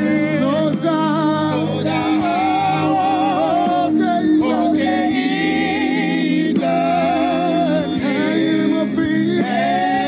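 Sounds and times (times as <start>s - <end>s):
person singing gospel song: 0.0s - 10.0s.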